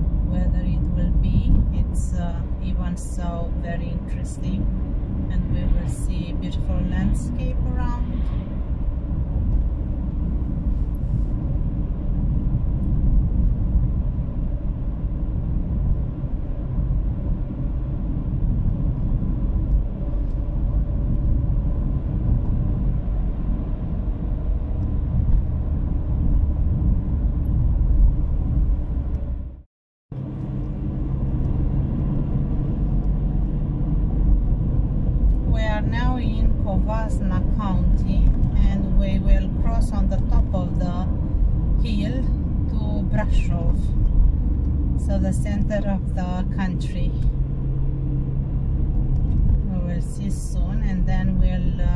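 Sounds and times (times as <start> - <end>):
car interior road rumble: 0.0 - 29.6, 30.2 - 51.9.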